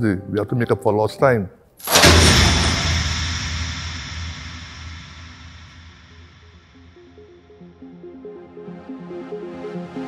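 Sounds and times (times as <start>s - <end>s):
deep boom rumbling: 1.8s - 7.0s.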